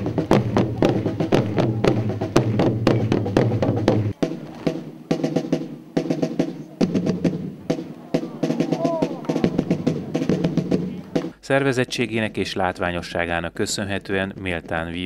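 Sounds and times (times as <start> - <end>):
marching snare drums: 0.0 - 13.1, 13.7 - 15.0.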